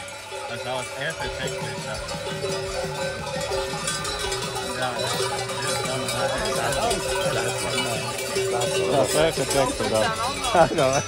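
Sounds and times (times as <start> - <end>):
cowbells clanking: 0.0 - 11.0
voices: 0.0 - 11.0.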